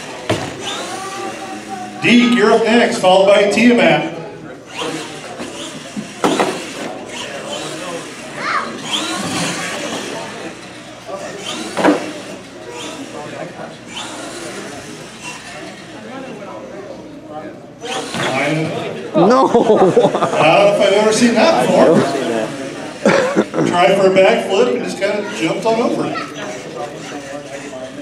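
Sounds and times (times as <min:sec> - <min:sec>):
toy truck motor whining: 0:00.0 - 0:02.4, 0:04.6 - 0:16.2, 0:17.8 - 0:18.8, 0:25.2 - 0:28.0.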